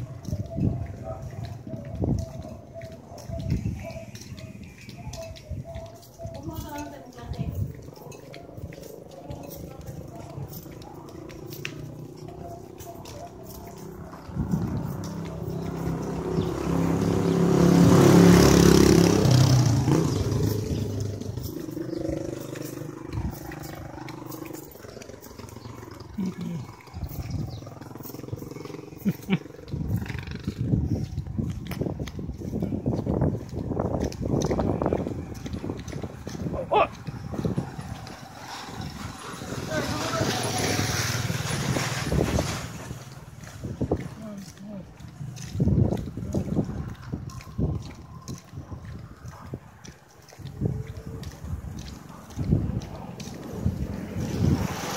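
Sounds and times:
handling and walking noise: 0:00.0 - 0:54.9
vehicle engine passing by: 0:07.8 - 0:54.9.

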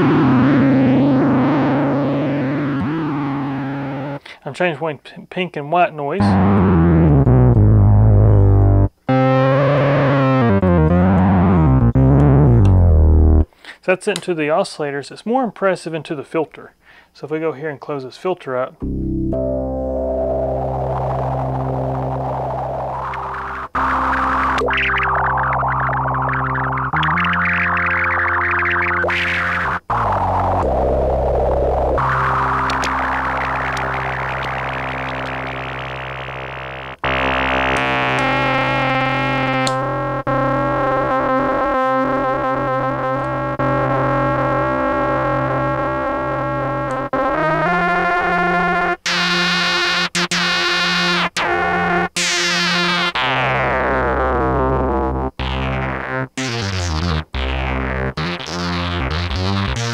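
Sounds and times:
synthesizer low notes with filter sweep: 0:00.0 - 0:04.2, 0:06.2 - 0:13.5, 0:18.8 - 0:59.9.

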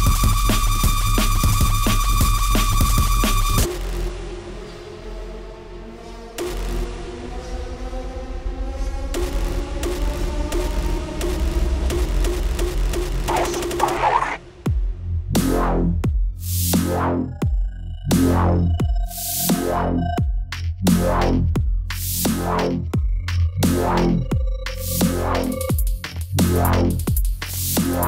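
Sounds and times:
electronic club music: 0:13.1 - 0:14.4, 0:15.4 - 0:28.0.

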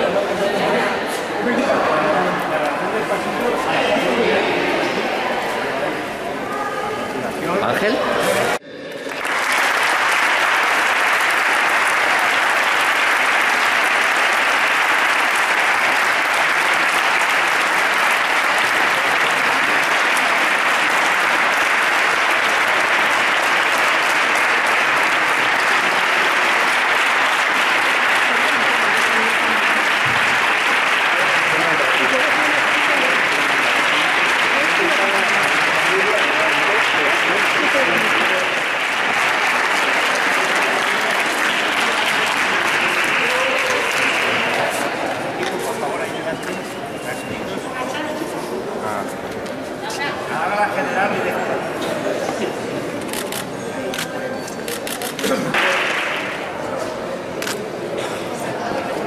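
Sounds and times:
voices chattering: 0:00.0 - 0:09.1, 0:12.1 - 0:59.0
crowd applauding: 0:07.5 - 0:48.0, 0:52.3 - 0:59.0.

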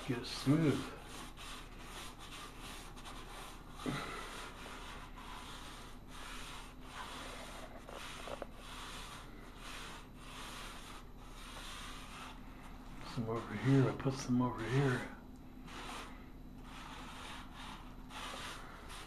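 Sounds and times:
sanding block rubbing ceiling: 0:00.0 - 0:19.0.

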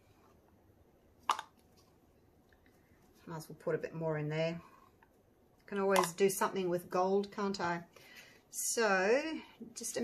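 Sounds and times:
plastic cup click: 0:01.3 - 0:01.6.

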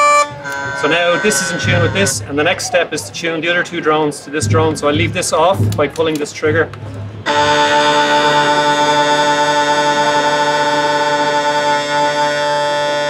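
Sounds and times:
bagpipe drones steady tone: 0:00.0 - 0:13.0.

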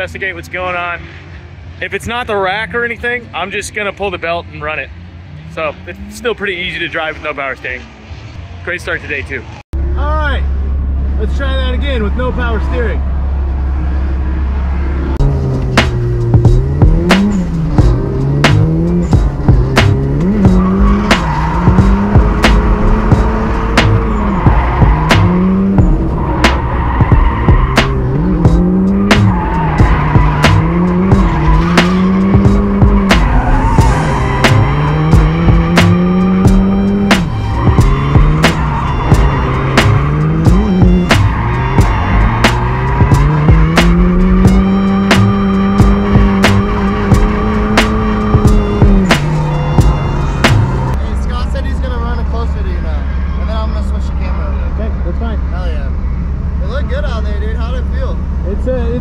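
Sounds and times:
car engine revving: 0:00.0 - 0:59.0
tire squeal: 0:11.2 - 0:58.5.

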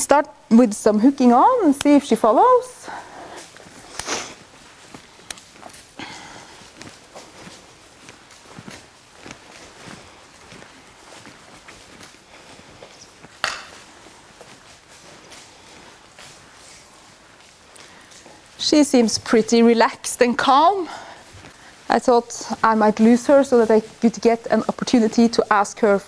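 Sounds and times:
footsteps rustling in straw: 0:01.6 - 0:26.0.

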